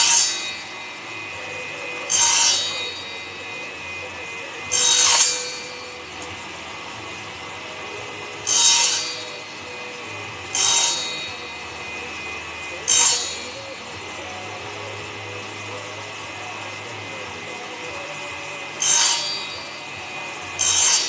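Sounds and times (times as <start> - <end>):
saw cutting wood: 0.0 - 21.0
table saw blade humming: 0.0 - 21.0.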